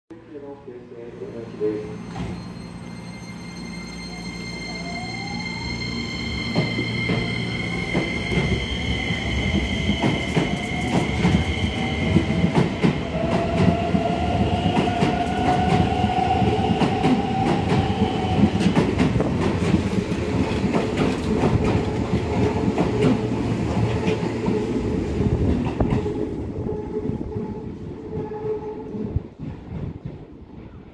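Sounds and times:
train low rumble: 5.0 - 30.9.

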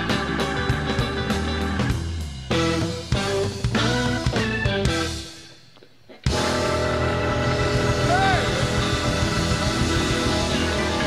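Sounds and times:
blues band playing: 0.0 - 5.6, 6.2 - 11.0.

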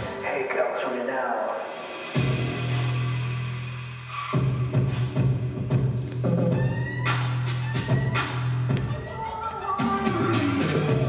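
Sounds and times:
sparse pop backing music: 1.5 - 11.0.

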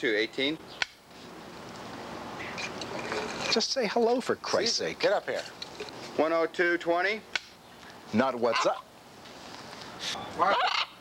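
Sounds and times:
macaw squawking: 8.4 - 8.9, 10.2 - 11.0.

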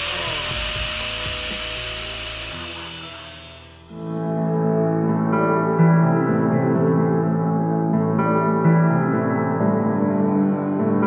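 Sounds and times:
angle grinder cutting metal: 0.0 - 4.0
background music: 0.0 - 11.0.

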